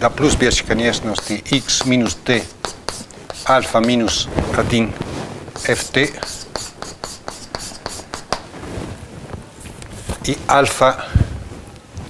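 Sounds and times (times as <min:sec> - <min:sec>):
chalk writing on blackboard: 0:00.9 - 0:04.3, 0:05.6 - 0:08.5.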